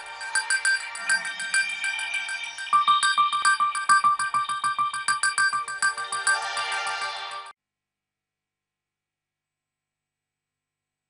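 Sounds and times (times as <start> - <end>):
electronic tv jingle: 0.0 - 7.5.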